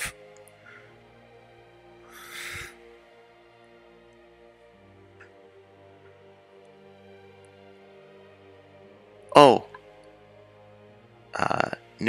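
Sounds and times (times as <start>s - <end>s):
breathy exhale: 0.0s - 1.0s, 2.1s - 2.8s
soft background music: 0.0s - 12.0s.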